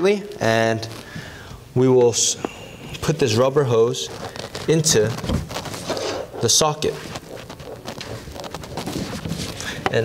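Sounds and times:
rubber hose rubbing and creaking: 2.6s - 10.0s.

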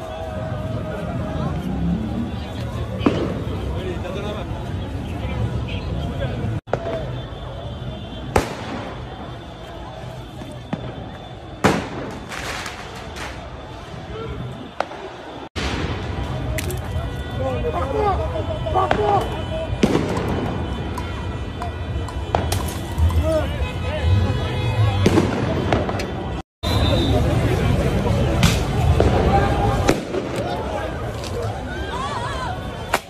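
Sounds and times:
crowd noise and shouting: 0.0s - 33.0s
fireworks bangs: 2.8s - 4.0s, 8.2s - 17.2s, 18.7s - 21.5s, 22.1s - 23.2s, 24.9s - 27.2s, 28.3s - 31.4s.

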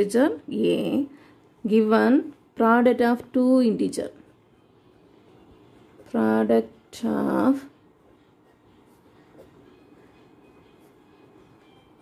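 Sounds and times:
low background noise: 0.0s - 12.0s
pen scratching on paper: 8.0s - 11.3s.

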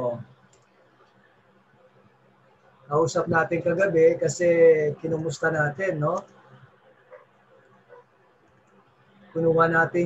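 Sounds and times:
faint microphone hiss: 0.0s - 10.0s.

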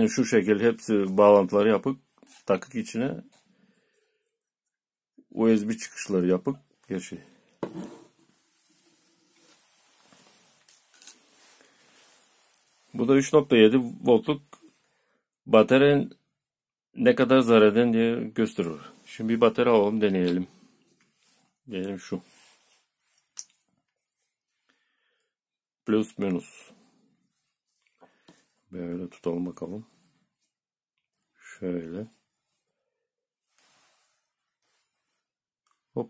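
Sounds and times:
plastic parts rustling: 9.4s - 11.7s.

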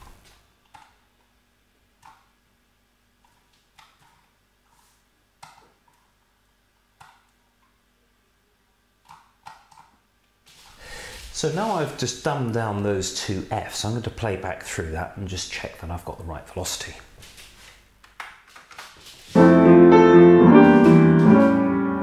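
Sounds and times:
computer mouse and keyboard clicks: 9.1s - 10.0s.

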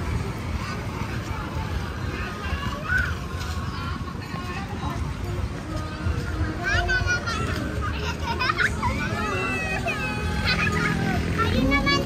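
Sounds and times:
children playing and shouting: 0.0s - 12.0s.

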